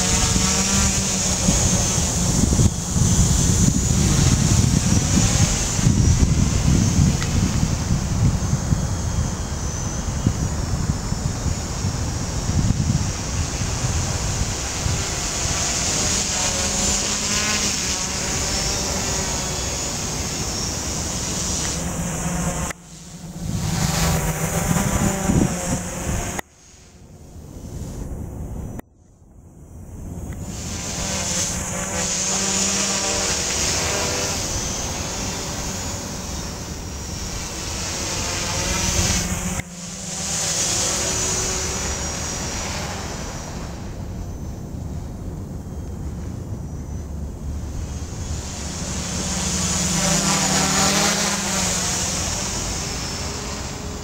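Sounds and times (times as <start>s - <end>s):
drone motors buzzing: 0.0s - 54.0s
wind noise on microphone: 0.0s - 54.0s.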